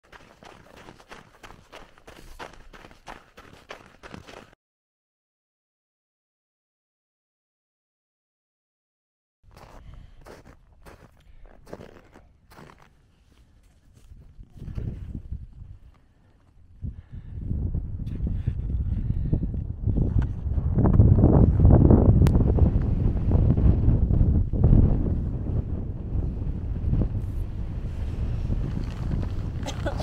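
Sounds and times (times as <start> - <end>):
footsteps crunching in snow: 0.0 - 4.5, 9.5 - 15.3
wind buffeting microphone: 13.9 - 16.0, 16.6 - 30.0.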